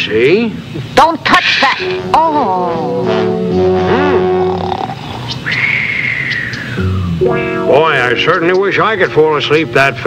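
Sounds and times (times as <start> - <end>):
short rising-and-falling cry: 3.8 - 7.1.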